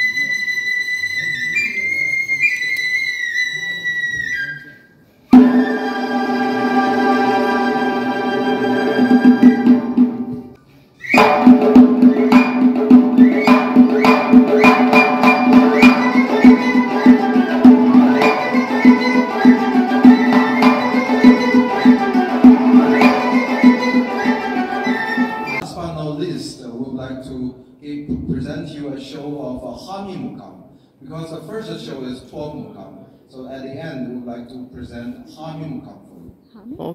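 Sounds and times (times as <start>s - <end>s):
side-blown flute: 0.0s - 25.6s
frame-drum beats: 5.3s - 10.5s, 11.1s - 25.6s
plucked long-necked lutes: 11.2s - 25.6s.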